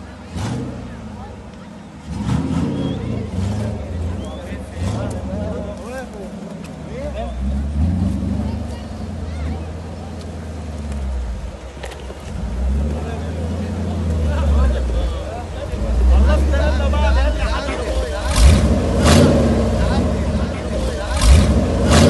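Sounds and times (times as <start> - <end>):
engine running at low revs: 0.0 - 22.0
spectators' voices: 0.0 - 22.0.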